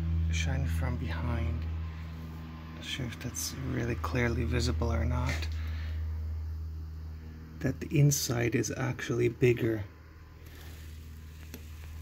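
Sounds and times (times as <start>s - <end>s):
low background hum: 0.0s - 12.0s
faint hiss: 7.2s - 12.0s.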